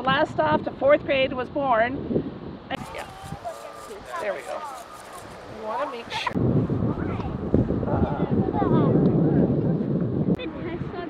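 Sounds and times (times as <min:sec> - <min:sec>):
wind rumbling on microphone: 0:00.0 - 0:11.0
faint voices: 0:02.8 - 0:11.0.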